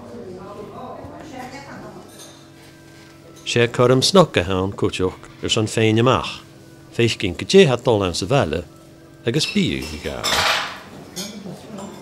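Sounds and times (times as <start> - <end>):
faint background chatter: 0.0 - 12.0
crockery and cutlery clattering: 9.3 - 12.0
light clinks of dishes: 9.4 - 12.0.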